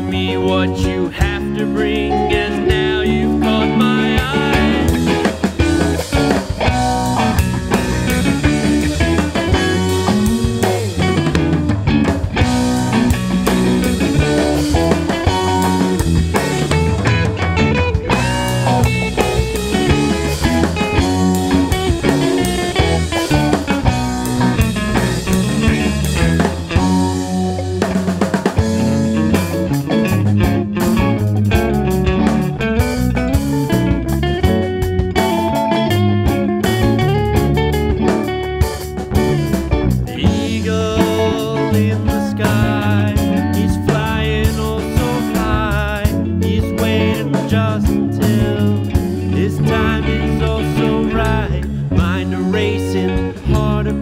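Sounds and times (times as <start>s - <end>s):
drum kit: 0.0s - 54.0s
rock guitar: 0.0s - 54.0s.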